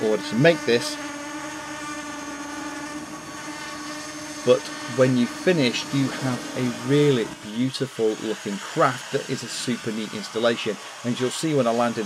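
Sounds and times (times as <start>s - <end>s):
quadcopter propeller buzz: 0.0s - 12.0s.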